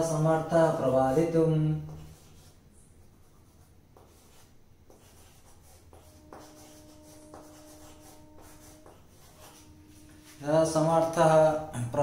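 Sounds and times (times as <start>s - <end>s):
chalk scratching on chalkboard: 0.1s - 11.2s.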